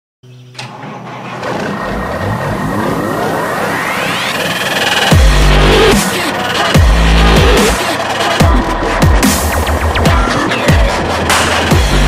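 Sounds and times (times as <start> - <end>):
low rumbling rising sweep: 1.2 - 7.8.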